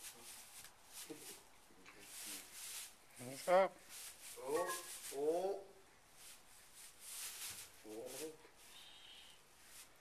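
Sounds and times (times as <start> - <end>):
straw rustling under hooves: 0.0 - 10.0.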